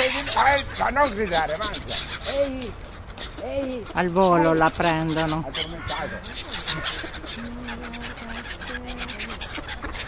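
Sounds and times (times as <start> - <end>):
ducks calling: 0.0 - 10.0
gulls calling: 0.0 - 10.0.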